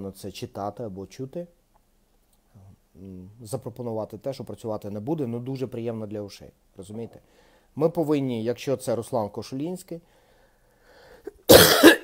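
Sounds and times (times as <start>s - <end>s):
man coughing harshly: 11.3s - 12.0s.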